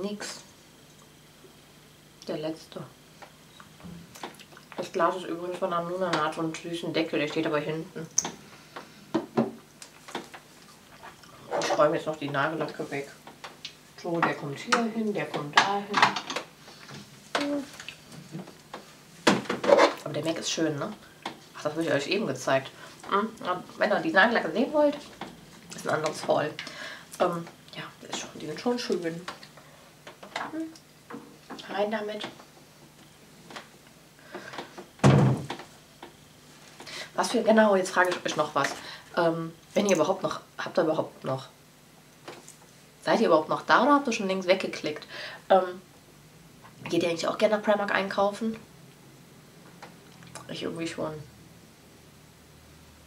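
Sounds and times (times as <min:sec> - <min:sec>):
cabinet door thudding shut: 0:35.0 - 0:35.5.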